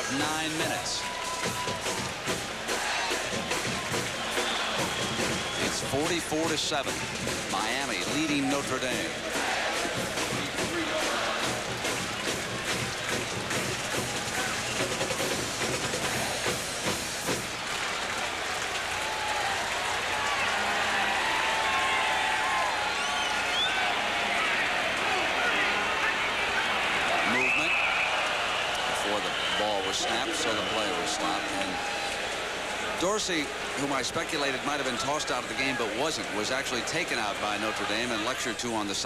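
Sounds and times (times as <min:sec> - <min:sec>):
band drums and music: 0:00.0 - 0:17.6
stadium crowd noise: 0:00.0 - 0:39.0.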